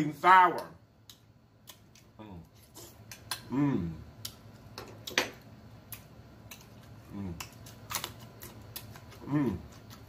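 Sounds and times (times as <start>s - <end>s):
chewing and lip smacking: 5.8s - 10.0s.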